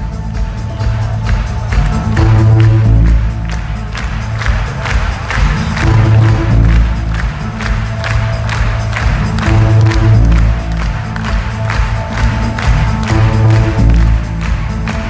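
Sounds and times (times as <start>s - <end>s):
heavy bass: 0.0s - 15.0s
steady drum beat: 0.0s - 15.0s.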